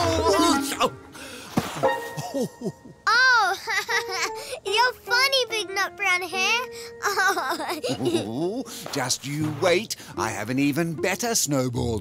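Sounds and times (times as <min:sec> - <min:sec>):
child giggling and laughing: 0:02.2 - 0:04.9, 0:07.0 - 0:08.6
child exclaiming: 0:03.1 - 0:03.8, 0:04.6 - 0:07.7.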